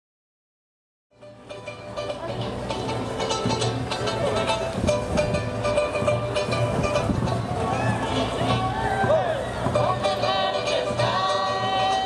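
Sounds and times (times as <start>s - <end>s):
voices singing held notes: 7.9s - 12.0s.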